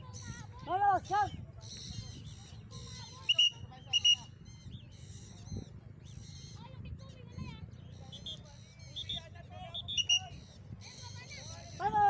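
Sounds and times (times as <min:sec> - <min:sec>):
birds chirping overhead: 0:00.0 - 0:12.0
high whistle: 0:03.3 - 0:04.3, 0:09.8 - 0:10.3.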